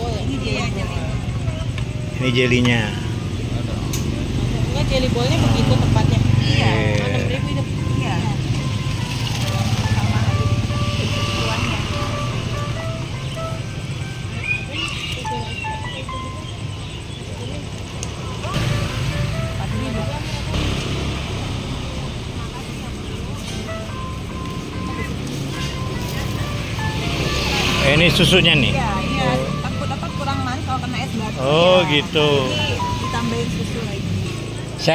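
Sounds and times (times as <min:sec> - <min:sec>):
road traffic rumble: 0:00.0 - 0:34.9
simple jingle melody: 0:06.7 - 0:14.5.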